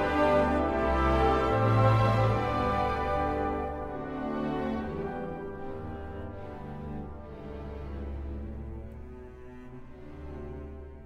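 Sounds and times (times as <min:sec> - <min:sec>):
orchestra playing slow funeral march: 0:00.0 - 0:11.0.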